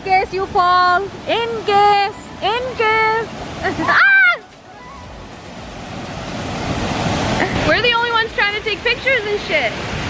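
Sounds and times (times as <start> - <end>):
falling water rushing: 0.0 - 10.0.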